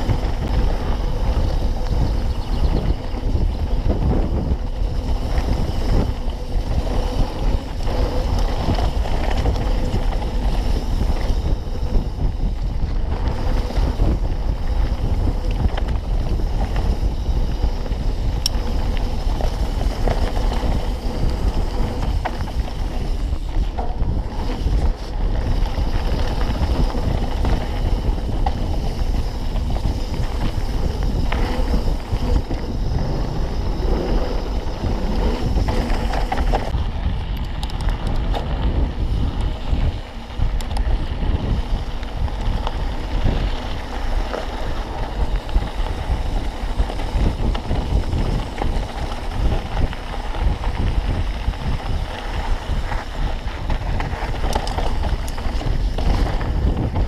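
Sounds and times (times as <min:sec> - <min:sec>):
bike rattling over dirt trail: 0:00.0 - 0:57.0
wind buffeting microphone: 0:00.0 - 0:57.0.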